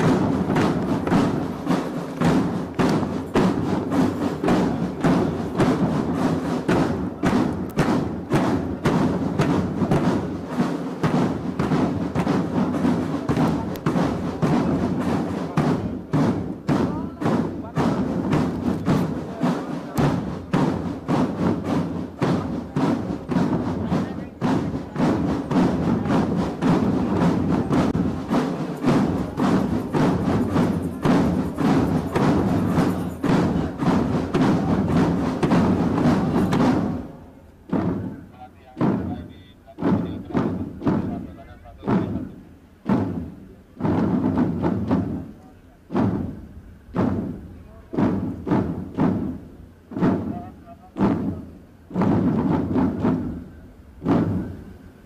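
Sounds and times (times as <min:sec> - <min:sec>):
marching drums rolling: 0:00.0 - 0:55.0.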